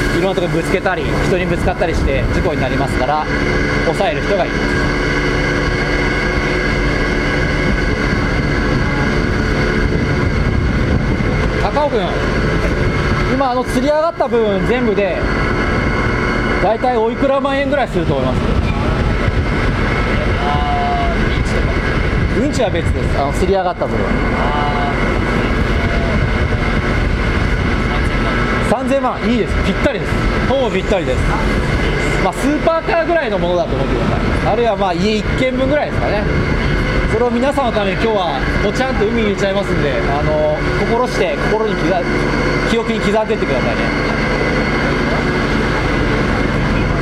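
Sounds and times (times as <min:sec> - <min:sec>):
deck machinery droning: 0:00.0 - 0:47.0
wind buffeting microphone: 0:00.0 - 0:47.0.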